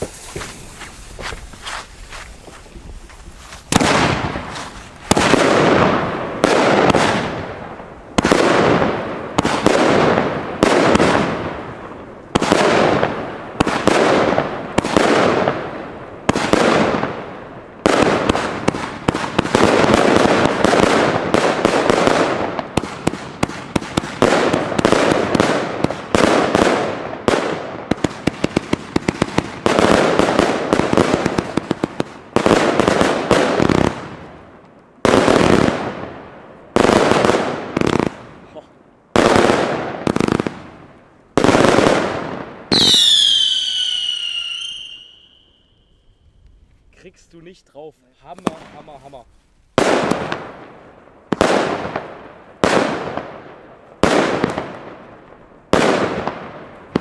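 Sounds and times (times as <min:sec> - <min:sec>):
firework bangs: 0:00.0 - 0:45.9, 0:48.3 - 0:57.0.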